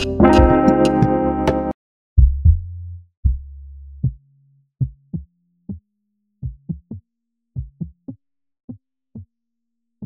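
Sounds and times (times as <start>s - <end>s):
deep synthesizer bass notes: 2.2s - 4.2s.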